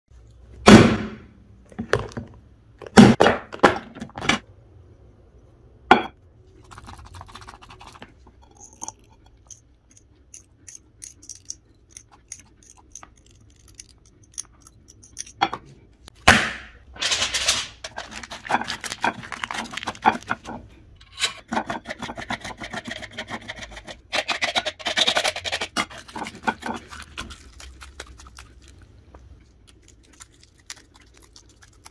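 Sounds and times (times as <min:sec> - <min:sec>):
crinkling: 0:17.0 - 0:20.6.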